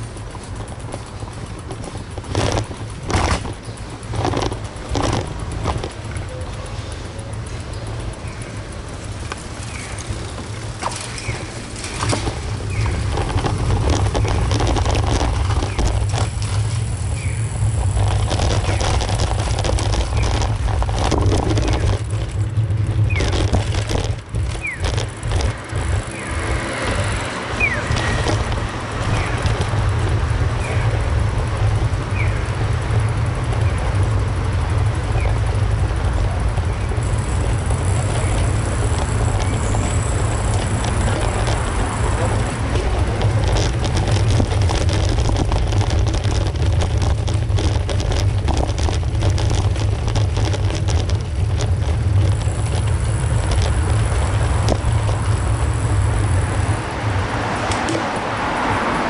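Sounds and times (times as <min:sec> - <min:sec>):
heavy low rumble: 0:00.0 - 0:59.0.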